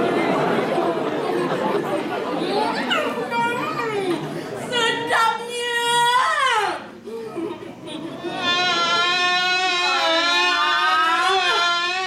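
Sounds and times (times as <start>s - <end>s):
overlapping indistinct chatter: 0.0s - 12.0s.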